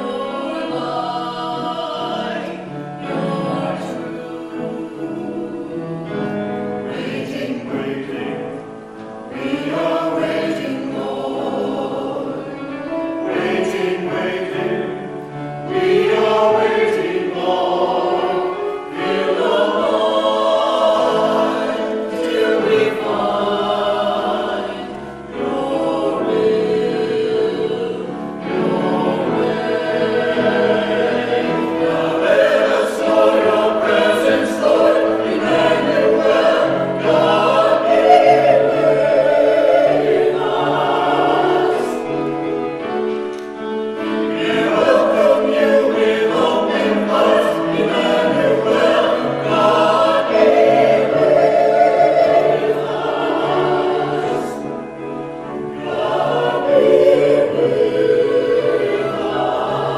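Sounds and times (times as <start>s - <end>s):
mixed choir singing a hymn: 0.0s - 59.9s.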